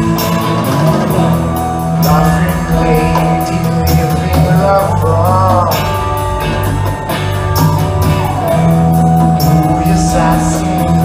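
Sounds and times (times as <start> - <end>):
rock band playing instrumental: 0.0 - 11.0.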